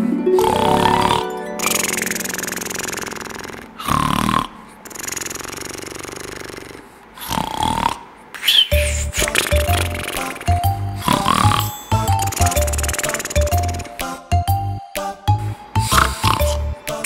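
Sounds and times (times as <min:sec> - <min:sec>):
background music: 0:00.0 - 0:04.7, 0:08.7 - 0:17.0
loud rasping snores: 0:00.4 - 0:08.2, 0:11.0 - 0:13.4, 0:15.8 - 0:16.8.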